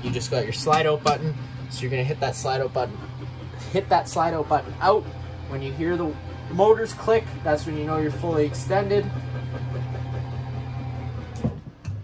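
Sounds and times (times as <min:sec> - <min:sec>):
electric motor humming: 0:00.0 - 0:12.0
motor clicking: 0:00.0 - 0:12.0.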